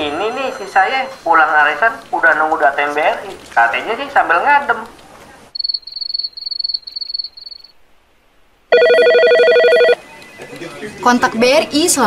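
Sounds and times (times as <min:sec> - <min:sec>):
electronic telephone ringing: 0:08.7 - 0:10.6.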